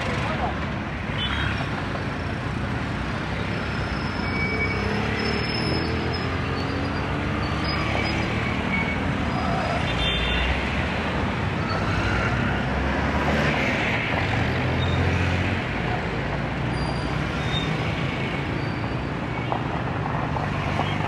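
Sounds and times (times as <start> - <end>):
motorcycles passing: 0.0 - 3.7.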